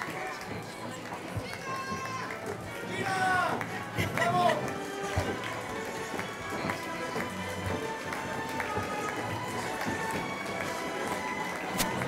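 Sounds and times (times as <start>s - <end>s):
crowd murmur: 0.0s - 12.0s
processional music: 2.2s - 12.0s.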